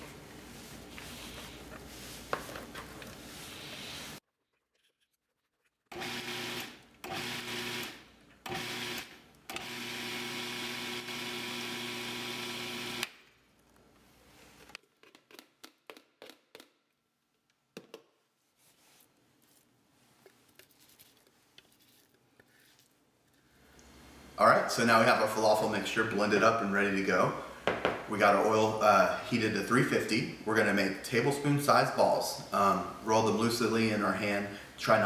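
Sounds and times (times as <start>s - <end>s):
food processor motor chopping: 5.9s - 13.1s.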